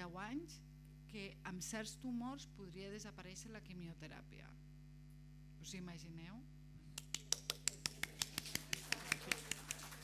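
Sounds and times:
person clapping quickly: 0:07.0 - 0:10.0.

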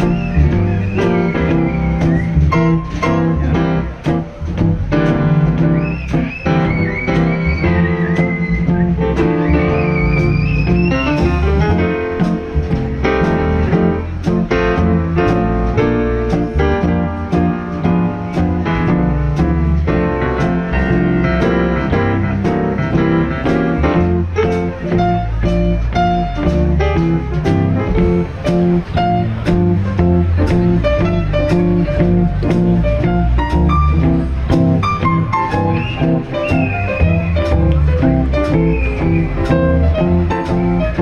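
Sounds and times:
guitar: 0:00.0 - 0:41.0
piano lead: 0:00.0 - 0:41.0
walking double bass: 0:00.0 - 0:41.0.

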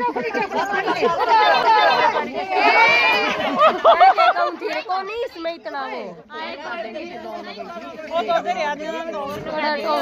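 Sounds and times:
women chattering excitedly: 0:00.0 - 0:10.0.

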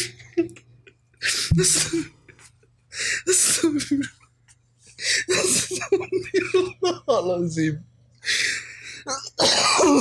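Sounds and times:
man laughing breathlessly: 0:01.2 - 0:02.4, 0:05.0 - 0:06.7.

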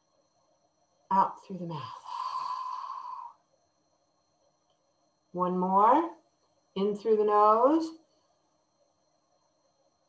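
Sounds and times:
woman exhaling slowly: 0:01.9 - 0:03.4.

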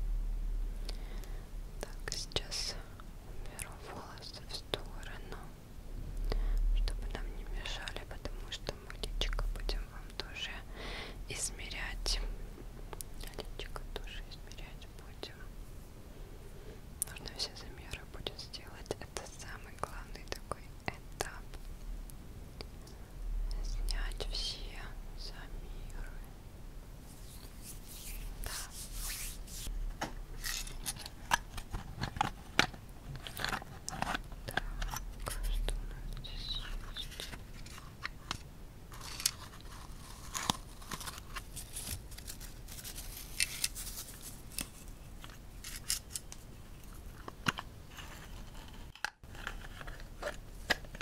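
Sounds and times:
woman whispering: 0:01.8 - 0:05.6, 0:06.4 - 0:12.4, 0:13.0 - 0:15.5, 0:17.0 - 0:21.6, 0:23.4 - 0:26.4, 0:34.4 - 0:37.3.

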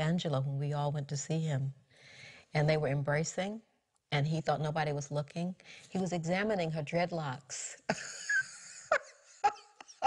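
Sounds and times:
woman laughing: 0:07.9 - 0:10.0.

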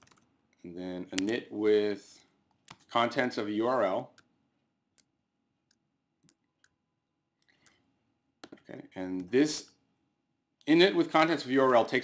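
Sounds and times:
keyboard and mouse clicks: 0:00.0 - 0:00.6, 0:02.5 - 0:02.9, 0:04.9 - 0:06.8.

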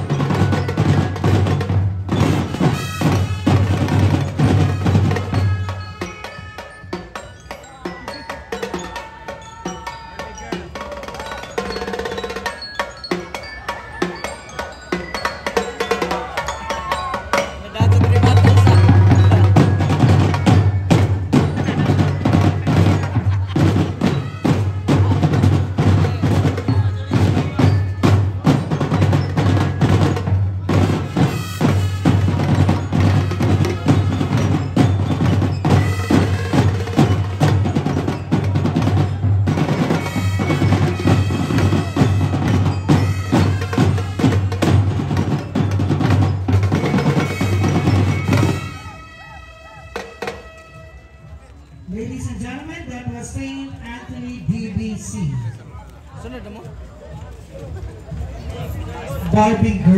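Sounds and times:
marching drumline cadence: 0:00.0 - 0:59.9.

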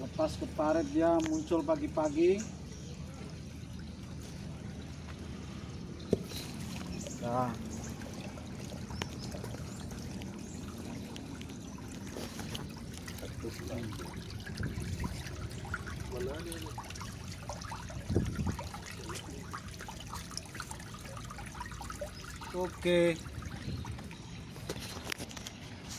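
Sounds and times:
shallow water trickling: 0:00.0 - 0:25.9.

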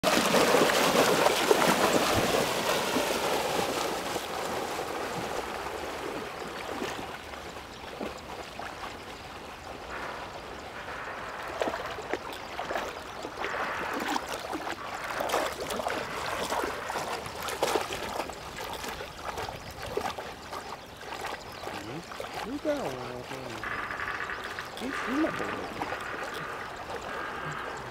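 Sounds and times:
dog splashing through water: 0:00.0 - 0:27.9.

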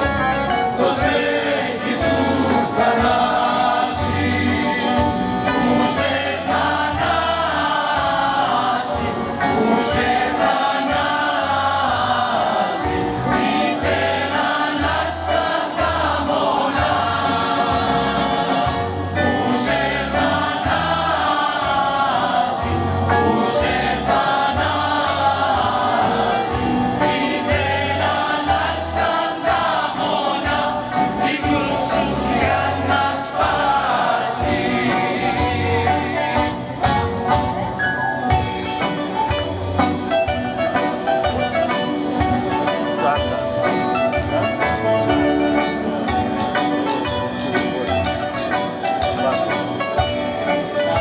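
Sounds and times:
choir singing in harmony: 0:00.0 - 0:37.4
accordion: 0:00.0 - 0:51.0
strummed string instrument: 0:00.0 - 0:51.0.

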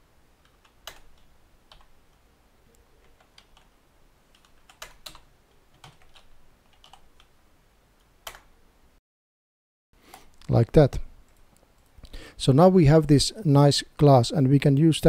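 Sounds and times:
keyboard typing: 0:00.4 - 0:01.9, 0:03.0 - 0:03.7, 0:04.3 - 0:07.3.

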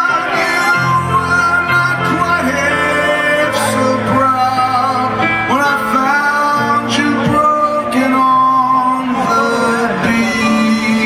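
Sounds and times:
man singing: 0:00.0 - 0:11.0.

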